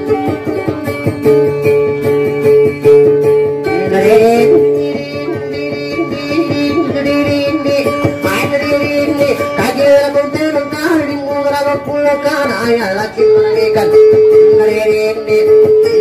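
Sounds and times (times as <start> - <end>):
acoustic guitar picking melody: 0.0 - 16.0
person singing ornamented lines: 3.6 - 16.0.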